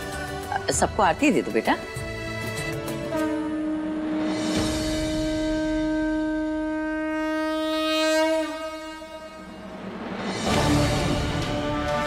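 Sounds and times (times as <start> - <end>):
conch shell blown: 2.9 - 12.0.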